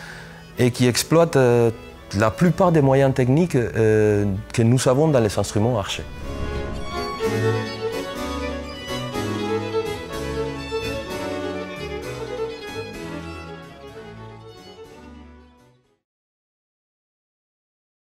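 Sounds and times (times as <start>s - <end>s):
baroque strings and harpsichord: 0.0s - 15.9s.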